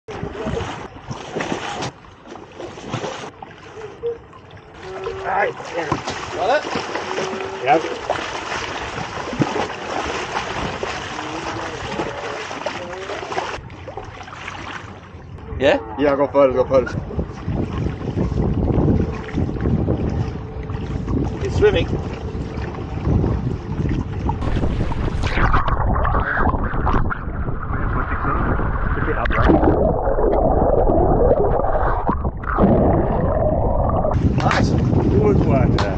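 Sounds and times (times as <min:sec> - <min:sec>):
water splashing against boat: 0:00.1 - 0:35.9.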